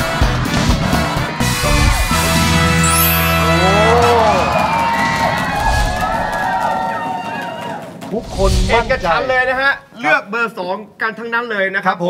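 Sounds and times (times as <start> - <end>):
game show music sting: 2.1 - 6.2
audience cheering and whooping: 2.9 - 8.1.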